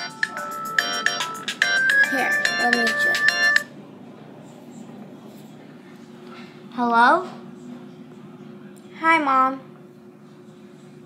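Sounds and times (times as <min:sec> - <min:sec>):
phone ringtone melody: 0:00.0 - 0:03.7.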